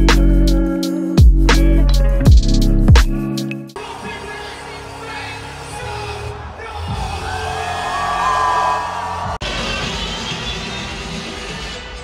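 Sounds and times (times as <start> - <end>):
crowd whooping: 3.8 - 10.5.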